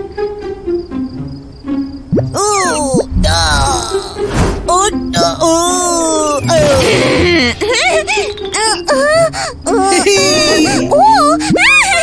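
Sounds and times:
background music: 0:00.0 - 0:12.0
cartoon character moaning: 0:02.3 - 0:07.6, 0:08.9 - 0:12.0.

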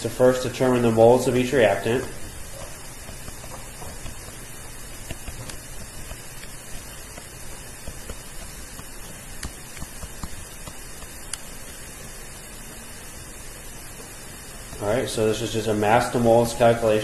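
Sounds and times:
microphone and room hiss: 0:00.0 - 0:17.0.

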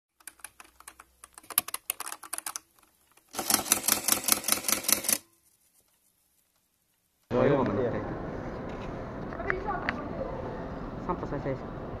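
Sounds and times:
keyboard keys typing: 0:00.1 - 0:05.3.

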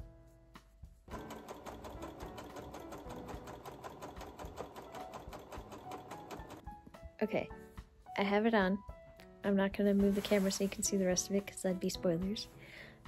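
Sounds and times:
overlock machine stitching: 0:01.1 - 0:06.6.

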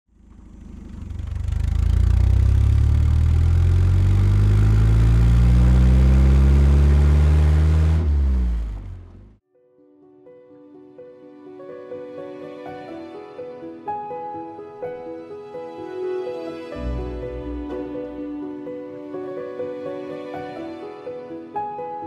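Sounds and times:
car engine under load: 0:00.1 - 0:09.4.

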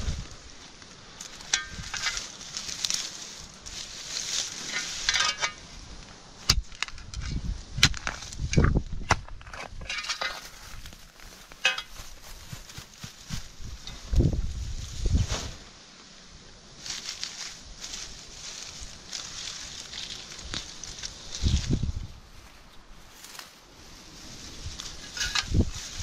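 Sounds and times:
dry grass stems rustling: 0:00.0 - 0:26.0
spade digging into gravelly soil: 0:01.2 - 0:13.2, 0:24.9 - 0:26.0.

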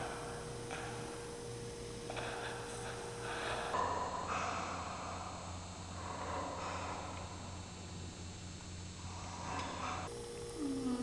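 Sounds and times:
steady hum: 0:00.0 - 0:11.0
person humming a low note: 0:10.5 - 0:11.0.

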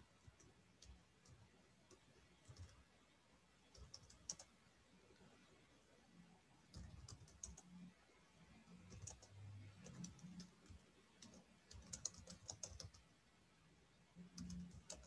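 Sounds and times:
computer keyboard typing: 0:00.4 - 0:02.8, 0:03.7 - 0:04.5, 0:06.7 - 0:07.7, 0:08.8 - 0:13.0, 0:14.3 - 0:15.0.

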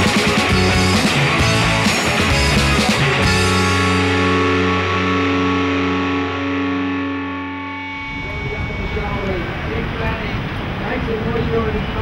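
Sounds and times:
distorted electric guitar chord: 0:00.0 - 0:10.2.

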